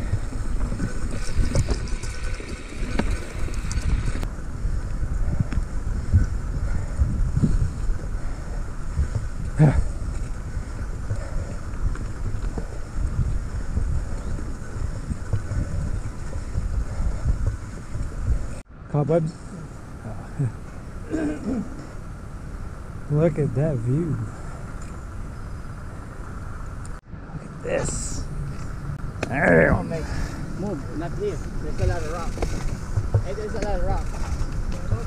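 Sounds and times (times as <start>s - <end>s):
bike rattling over rough trail: 0.0s - 18.6s, 30.2s - 35.0s
wind buffeting microphone: 0.0s - 18.7s, 19.9s - 35.0s.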